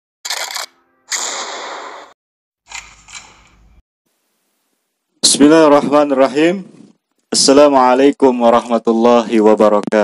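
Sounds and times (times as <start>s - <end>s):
sharp bursts of noise: 0.3s - 3.6s.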